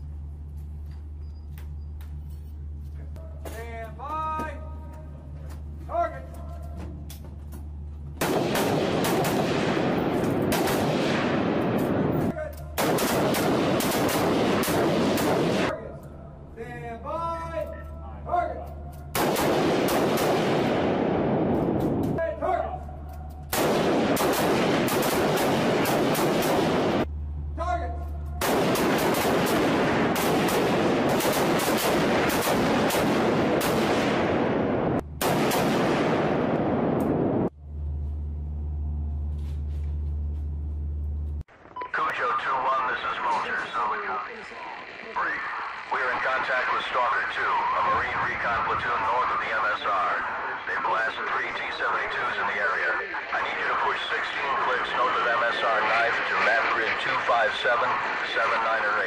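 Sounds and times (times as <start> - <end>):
rifles firing rapidly with echo: 8.2 - 15.8, 19.1 - 22.2, 23.4 - 27.1, 28.4 - 37.3.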